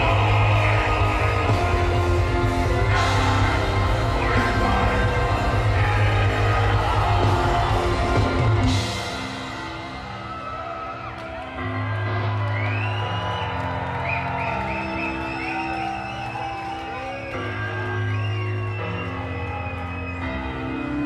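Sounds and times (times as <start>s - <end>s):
black metal band playing live: 0.0s - 12.7s.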